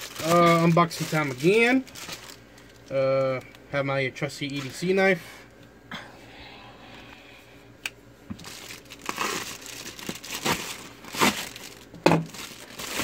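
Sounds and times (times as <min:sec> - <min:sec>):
plastic crinkling and ripping: 0:00.0 - 0:03.6, 0:08.4 - 0:13.0
knife cutting plastic mailer: 0:09.1 - 0:13.0.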